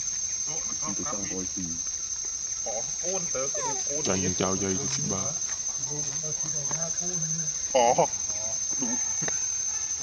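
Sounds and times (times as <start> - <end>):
insects droning: 0.0 - 10.0
people talking: 0.5 - 1.8, 2.6 - 9.1.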